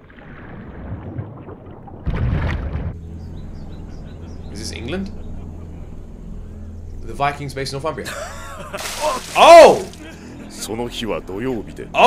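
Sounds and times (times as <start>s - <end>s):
low rumbling drone: 2.8s - 8.3s.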